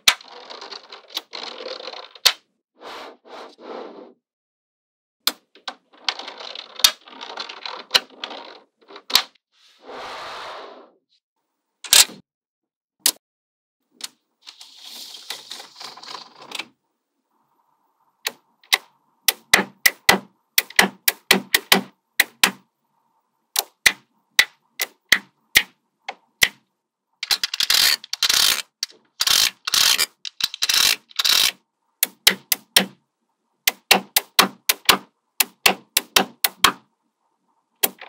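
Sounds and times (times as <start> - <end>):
magnetic metal balls clicking: 27.2 - 33.0, 33.6 - 36.8.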